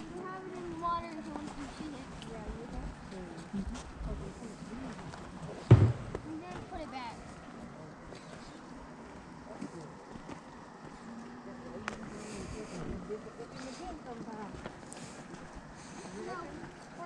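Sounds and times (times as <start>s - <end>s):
distant voices talking: 0.0s - 17.0s
loud low thump: 5.7s - 6.4s.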